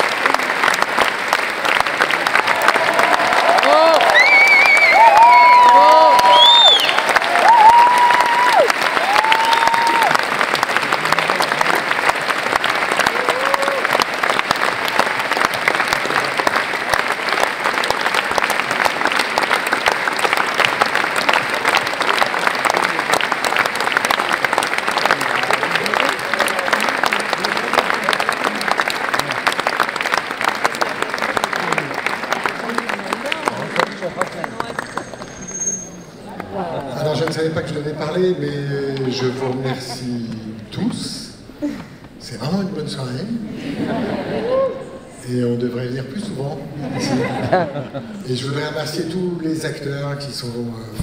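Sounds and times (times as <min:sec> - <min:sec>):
audience applauding: 0:00.0 - 0:40.9.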